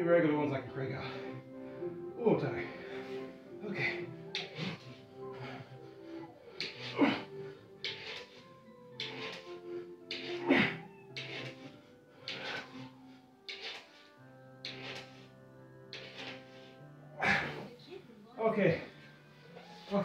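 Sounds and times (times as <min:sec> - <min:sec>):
children's tv background music: 0:00.0 - 0:20.0
man breathing hard: 0:01.1 - 0:15.3.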